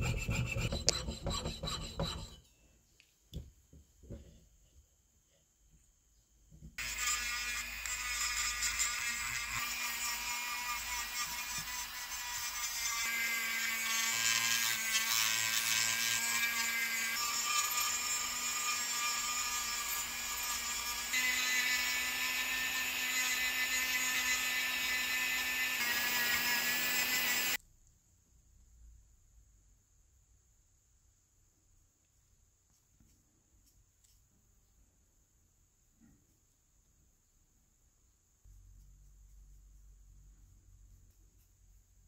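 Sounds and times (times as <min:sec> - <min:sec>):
rotary tool high whine: 0:06.8 - 0:27.6.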